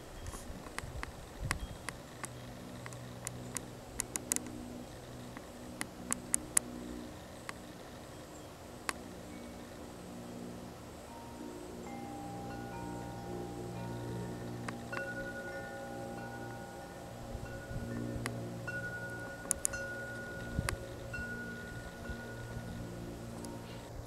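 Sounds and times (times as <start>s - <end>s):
sharp clicks: 0.2s - 4.5s
ringing chime tones: 11.0s - 24.0s.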